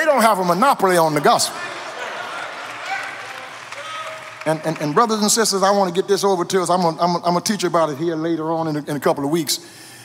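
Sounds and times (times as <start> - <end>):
congregation applauding: 0.8 - 6.3.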